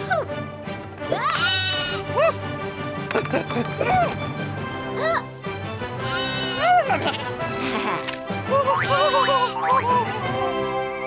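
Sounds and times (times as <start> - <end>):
background music: 0.0 - 11.0
cartoon goat bleating: 1.3 - 2.0, 6.0 - 9.8.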